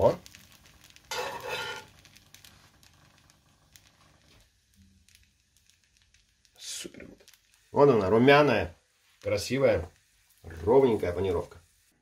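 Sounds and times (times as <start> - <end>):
chicken frying in oil: 0.0 - 12.0
metal spatula turning food: 0.3 - 3.2.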